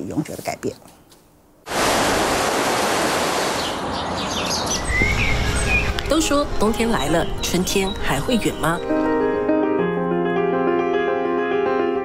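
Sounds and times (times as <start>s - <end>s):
water rushing around rocks: 1.7s - 4.0s
birds chirping: 3.4s - 9.2s.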